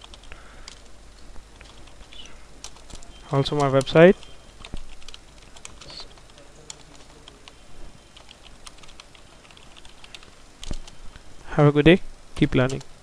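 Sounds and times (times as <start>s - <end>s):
typing on computer keyboard: 1.6s - 11.0s.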